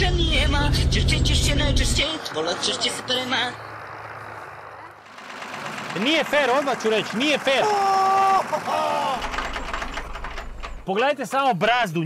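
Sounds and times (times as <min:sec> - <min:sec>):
tractor engine running: 0:00.0 - 0:11.4.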